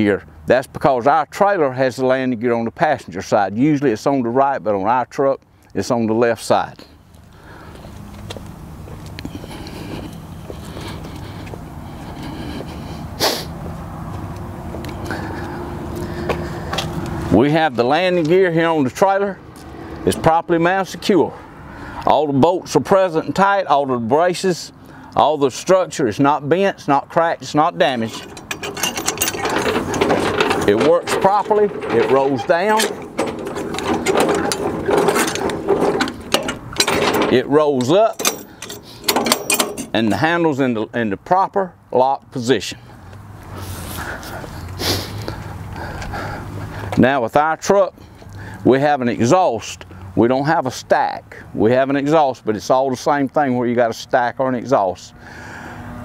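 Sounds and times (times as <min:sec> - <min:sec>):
footsteps on concrete: 0:07.1 - 0:17.2
landing gear crank clicking and grinding: 0:27.8 - 0:40.0.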